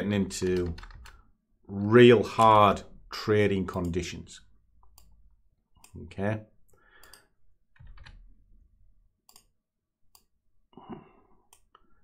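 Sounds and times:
computer mouse clicks: 4.8s - 5.2s, 7.0s - 8.2s, 9.2s - 10.3s.

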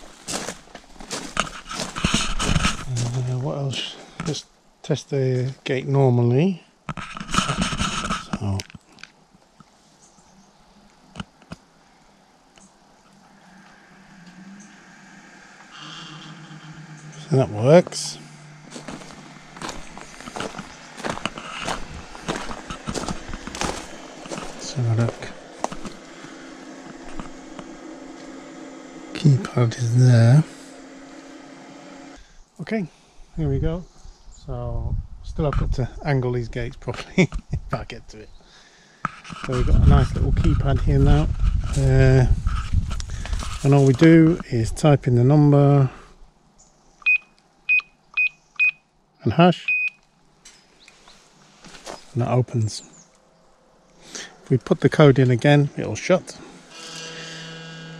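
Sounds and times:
footsteps on gravel: 0.0s - 3.4s, 17.6s - 27.7s, 39.5s - 44.1s, 50.9s - 52.3s
keypad beeps: 47.0s - 48.8s, 49.7s - 50.0s.

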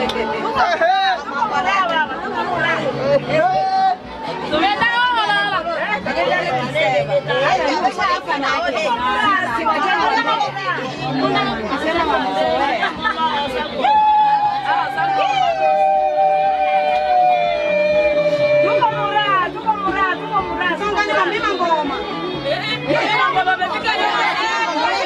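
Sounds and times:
lively group chatter: 0.0s - 25.0s.

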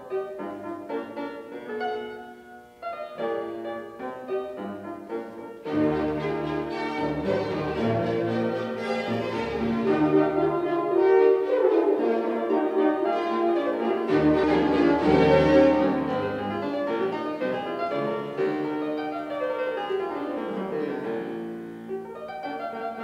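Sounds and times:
fortepiano: 0.0s - 23.0s
string orchestra: 5.6s - 19.0s.

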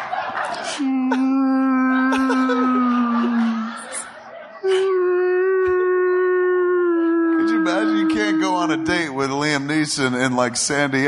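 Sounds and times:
person wailing like whale song: 0.8s - 3.8s, 4.6s - 9.1s
person talking: 0.8s - 11.0s.

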